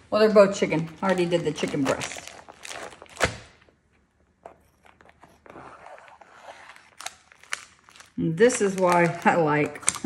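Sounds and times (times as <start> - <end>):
plastic packaging crinkling: 0.6 - 10.0
scissors cutting plastic film: 1.0 - 3.6, 4.5 - 10.0.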